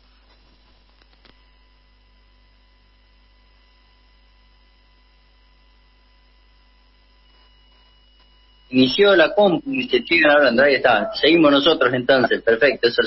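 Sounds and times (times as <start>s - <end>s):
faint mains hum: 0.0s - 13.0s.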